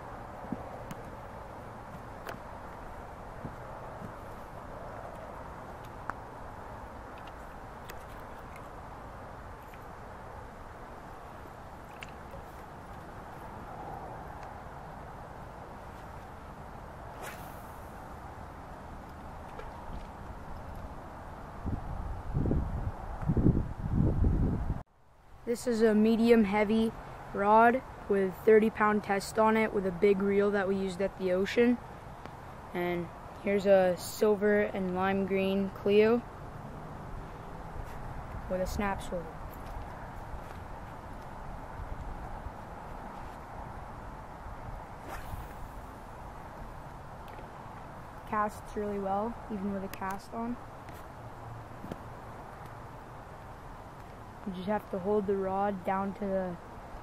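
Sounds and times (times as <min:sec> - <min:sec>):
fishing rod cast swish: 0:17.1 - 0:18.0, 0:45.0 - 0:46.1.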